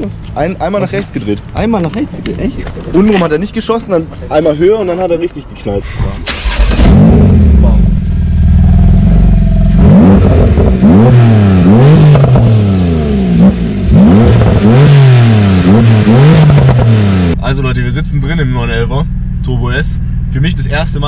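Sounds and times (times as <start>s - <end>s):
exhaust cracks: 5.8s - 21.0s
sports car engine revving: 6.4s - 21.0s.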